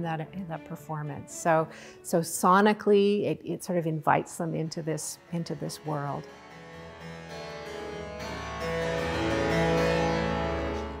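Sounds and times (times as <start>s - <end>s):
harpsichord chords: 4.4s - 11.0s.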